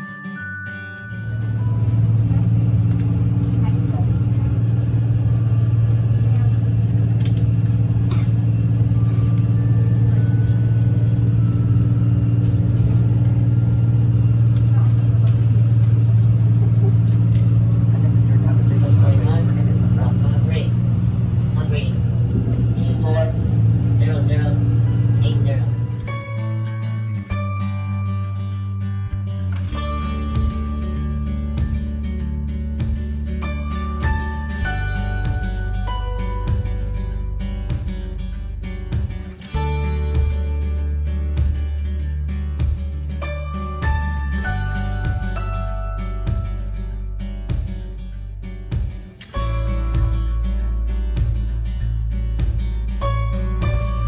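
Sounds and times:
bus interior low hum: 0:00.0 - 0:54.0.

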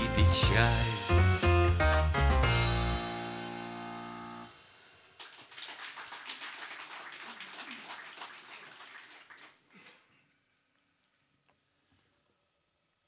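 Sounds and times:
audience applauding: 0:05.2 - 0:09.9.

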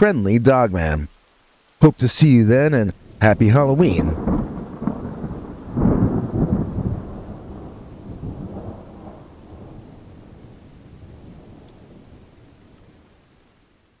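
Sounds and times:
rain: 0:00.0 - 0:14.0
thunder rumbling: 0:02.5 - 0:13.3.

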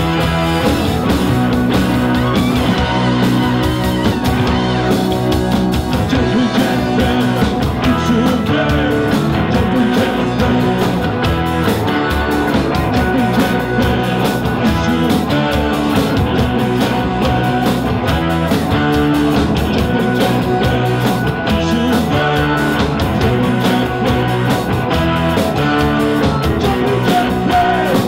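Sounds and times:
bass guitar: 0:00.0 - 0:28.0
drum kit beat: 0:00.0 - 0:28.0
electric guitar: 0:00.0 - 0:28.0
saxophone: 0:01.7 - 0:05.5.

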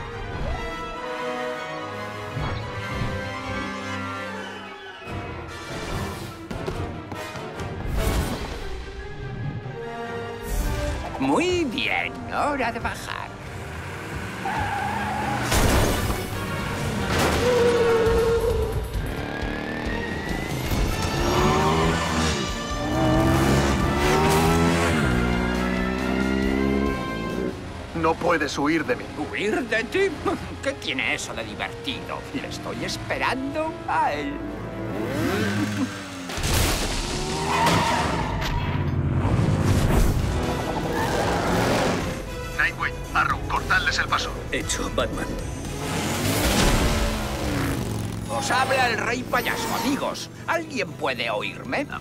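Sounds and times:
action music: 0:00.0 - 0:52.0
motorcycle engine revving: 0:13.4 - 0:15.5, 0:16.1 - 0:27.6, 0:34.4 - 0:38.0, 0:45.2 - 0:50.4
tire screech: 0:13.6 - 0:27.5, 0:37.0 - 0:42.3, 0:45.7 - 0:50.5.

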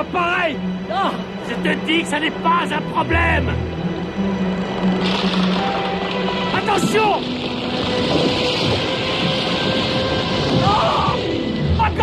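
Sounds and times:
film soundtrack music: 0:00.0 - 0:12.0
steady rushing noise: 0:00.0 - 0:12.0.

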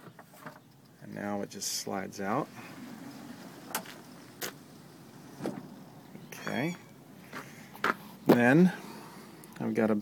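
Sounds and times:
metal slide track rumbling: 0:02.4 - 0:06.0.

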